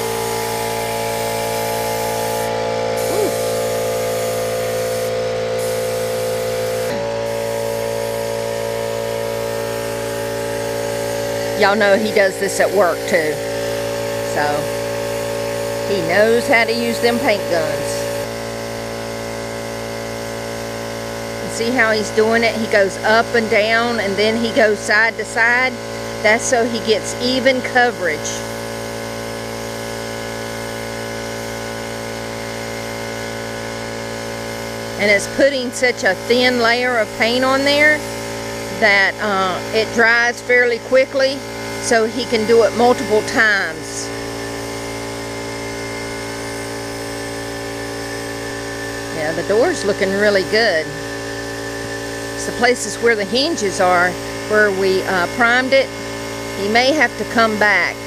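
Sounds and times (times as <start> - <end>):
air compressor humming: 0.0 - 58.0
spray gun air hiss: 0.0 - 58.0.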